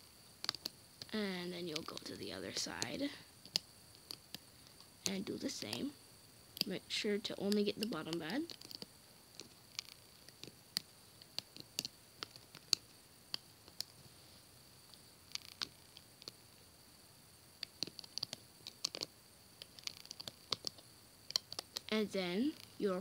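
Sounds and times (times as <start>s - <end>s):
high-pitched background whine: 0.0s - 23.0s
rubber bands clicking and snapping: 0.4s - 5.9s, 7.5s - 14.0s, 15.3s - 16.4s, 17.6s - 22.8s.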